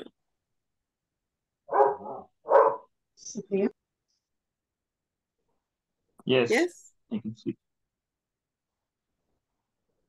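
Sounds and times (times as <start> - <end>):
dog barking: 1.7 - 2.9.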